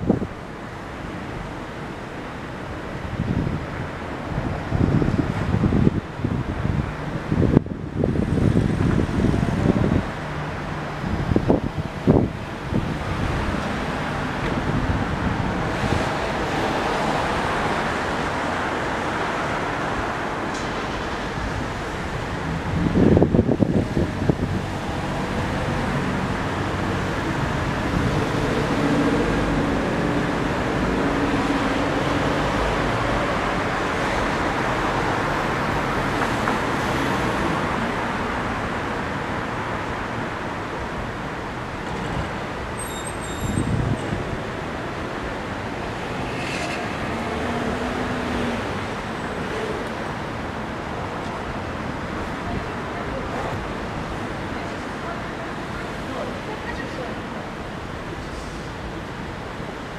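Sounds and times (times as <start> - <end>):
street traffic: 0.0 - 59.9
wind buffeting microphone: 3.0 - 19.1, 20.1 - 37.9, 43.4 - 45.8.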